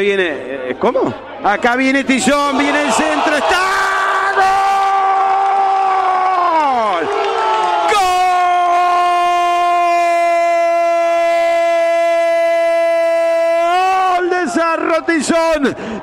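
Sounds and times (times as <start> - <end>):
man shouting goal: 2.2 - 5.3, 7.8 - 15.7.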